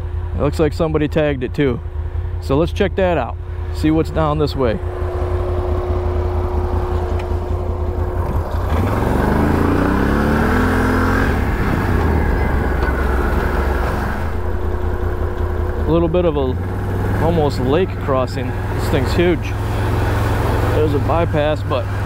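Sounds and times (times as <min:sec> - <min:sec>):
atv engine idling and revving: 0:00.0 - 0:22.0.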